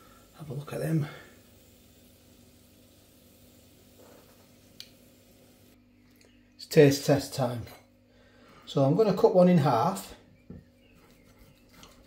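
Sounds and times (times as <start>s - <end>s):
hot fat sizzling: 0.0s - 5.8s
low steady hum: 0.0s - 12.0s.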